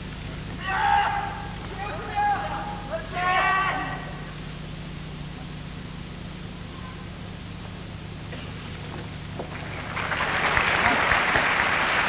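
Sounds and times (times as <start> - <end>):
steady low hum: 0.0 - 12.0
person shouting high call: 0.6 - 4.2.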